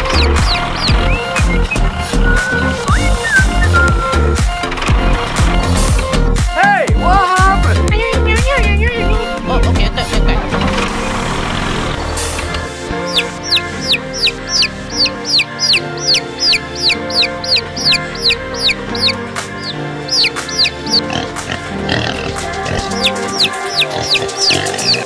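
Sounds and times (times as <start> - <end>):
baby chicks peeping: 0.0 - 2.3, 11.9 - 25.0
background music: 0.0 - 25.0.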